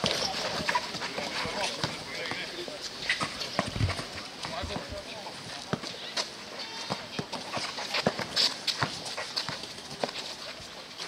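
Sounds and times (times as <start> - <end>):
players' footsteps: 0.0 - 11.0.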